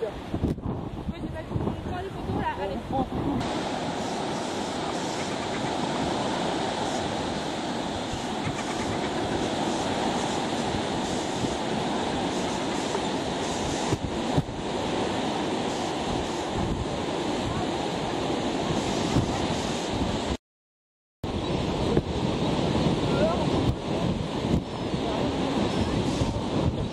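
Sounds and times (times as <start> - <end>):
surf on shingle beach: 0.0 - 20.4, 21.3 - 26.9
wind buffeting microphone: 0.0 - 20.4, 21.2 - 26.9.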